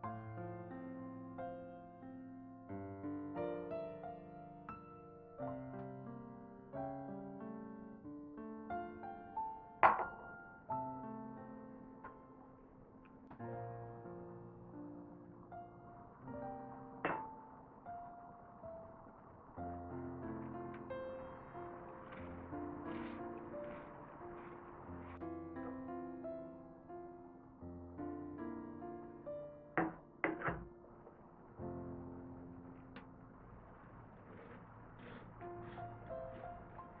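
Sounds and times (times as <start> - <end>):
soft piano-like background music: 0.0 - 37.0
tea cup clinking on saucer: 9.8 - 10.2.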